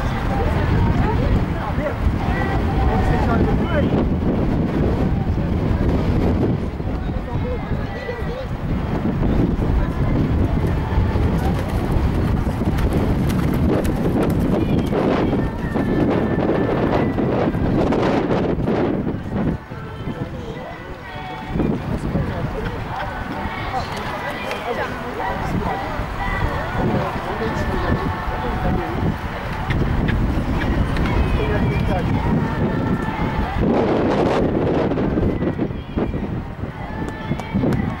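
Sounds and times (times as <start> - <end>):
faint voices: 0.0 - 38.0
wind rumbling on microphone: 0.0 - 38.0.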